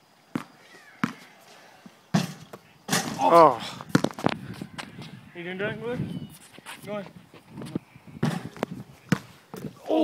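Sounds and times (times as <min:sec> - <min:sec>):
basketball hitting hard surfaces: 0:02.1 - 0:04.2, 0:08.2 - 0:09.7.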